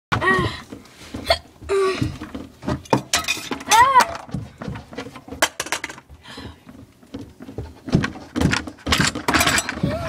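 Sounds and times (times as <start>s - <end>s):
sharp knocks of things shaken: 2.1s - 6.1s, 7.1s - 10.0s.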